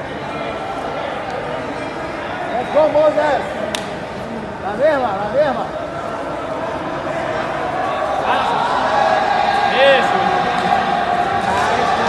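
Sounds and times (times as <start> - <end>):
crowd chatter in echoing hall: 0.0 - 12.0.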